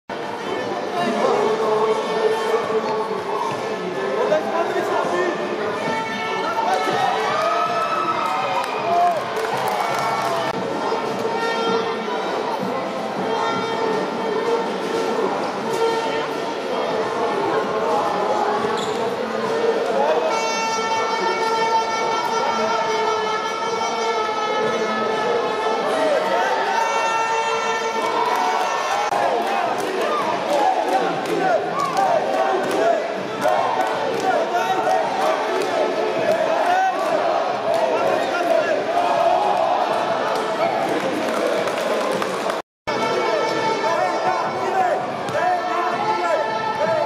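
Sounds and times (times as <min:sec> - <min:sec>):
crowd voices echoing: 0:00.1 - 0:47.0.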